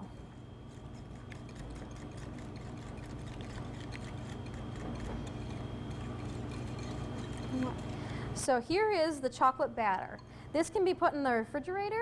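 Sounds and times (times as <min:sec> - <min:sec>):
low hum: 0:00.0 - 0:11.1
whisk ticking against bowl: 0:00.7 - 0:08.0.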